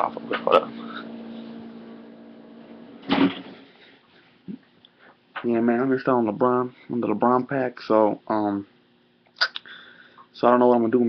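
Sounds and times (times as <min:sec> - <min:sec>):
electrical device hum: 0:00.0 - 0:11.0
short thump: 0:03.0 - 0:03.6.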